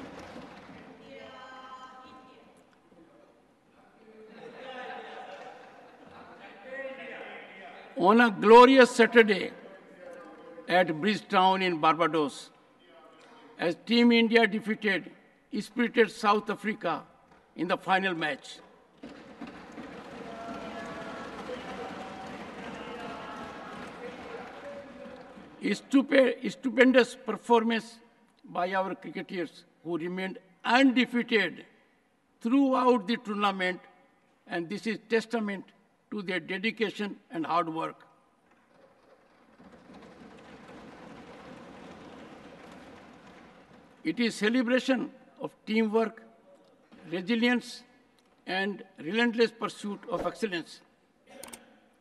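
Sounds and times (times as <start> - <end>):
person giving a speech: 1.0 - 18.7, 24.0 - 31.8, 44.0 - 51.8
thumping on wooden desks: 19.0 - 22.7, 38.5 - 44.1
audience applauding: 19.4 - 25.6.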